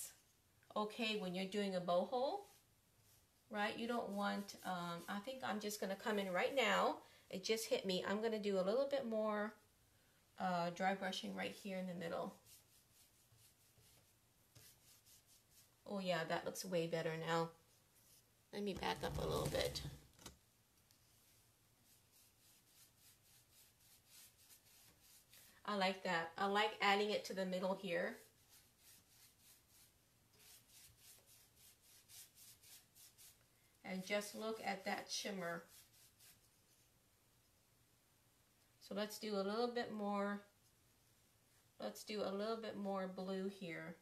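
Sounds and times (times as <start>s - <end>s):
paintbrush strokes on wood: 2.4s - 6.6s, 11.6s - 15.9s, 21.0s - 25.6s, 27.8s - 37.0s.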